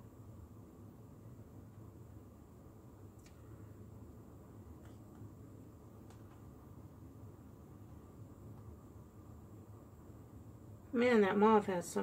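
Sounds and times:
faint low hum: 0:00.0 - 0:12.0
faint click: 0:03.2 - 0:03.4.

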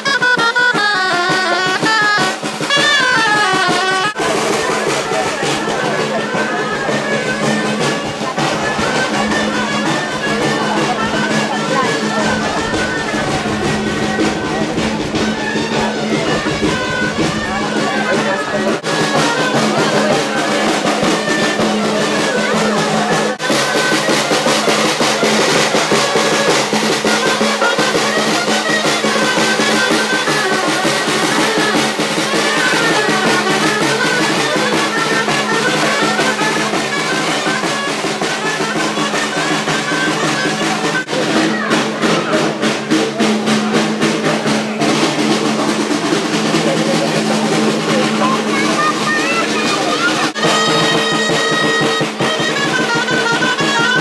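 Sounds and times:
clarinet melody: 0:00.0 - 0:41.7, 0:49.2 - 0:54.0
snare drum roll: 0:00.0 - 0:54.0.

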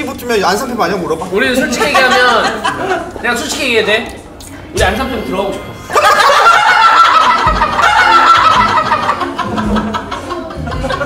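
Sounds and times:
people laughing loudly: 0:01.6 - 0:03.2, 0:05.8 - 0:11.0.

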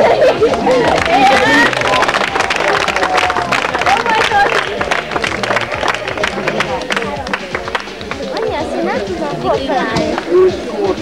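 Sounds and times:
crowd clapping: 0:00.0 - 0:09.3, 0:10.0 - 0:10.3
music playing: 0:00.0 - 0:11.0
voices calling out: 0:00.0 - 0:11.0.

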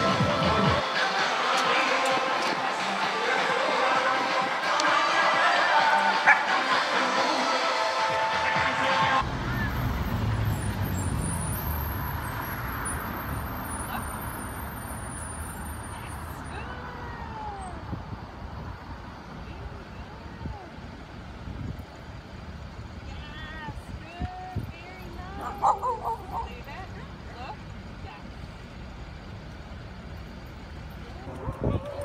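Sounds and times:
traffic rumble: 0:00.0 - 0:32.0.

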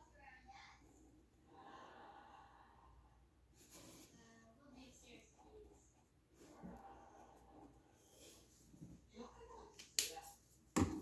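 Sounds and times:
marker knocking on wooden table: 0:10.8 - 0:11.0.

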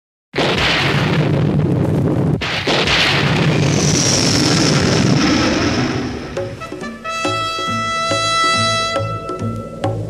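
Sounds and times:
rumbling thunderclap: 0:00.4 - 0:08.1.

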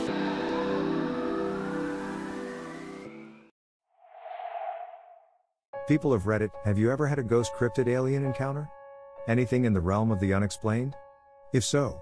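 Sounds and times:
background music: 0:00.0 - 0:03.5, 0:05.8 - 0:12.0
soft rushing transition whoosh: 0:04.0 - 0:05.3.

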